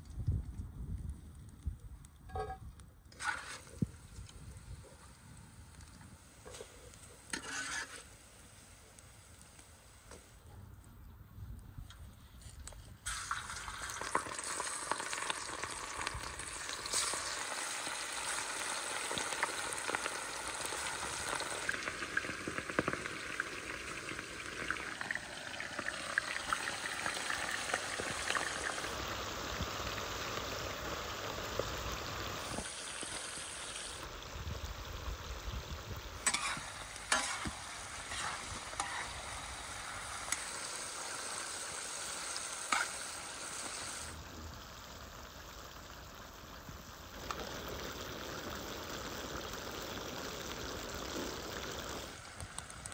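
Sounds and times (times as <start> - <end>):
meat sizzling in a wok: 7.3 - 9.2, 13.1 - 52.4.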